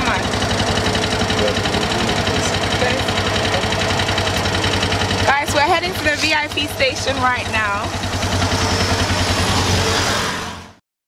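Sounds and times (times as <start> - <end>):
motor tricycle engine running: 0.0 - 10.6.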